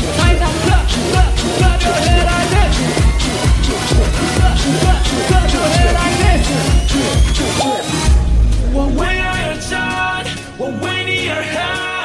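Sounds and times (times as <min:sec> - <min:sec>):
electronic hip-hop beat: 0:00.0 - 0:12.0.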